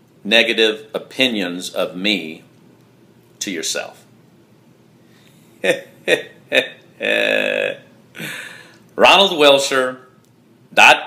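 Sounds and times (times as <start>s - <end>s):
man laughing: 5.6s - 8.6s.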